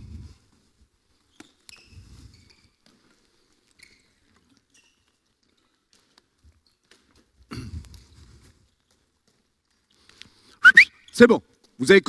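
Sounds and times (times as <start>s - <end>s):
sports shoes squeaking on floor: 1.2s - 5.3s.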